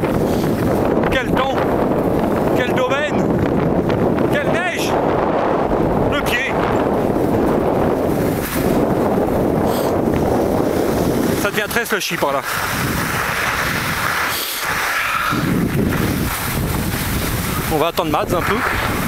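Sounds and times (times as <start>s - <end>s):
wind buffeting microphone: 0.0s - 19.0s
skis sliding over snow: 8.2s - 19.0s.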